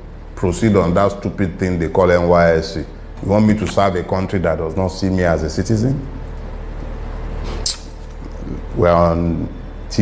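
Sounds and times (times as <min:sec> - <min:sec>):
low background hum and rumble: 0:00.0 - 0:10.0.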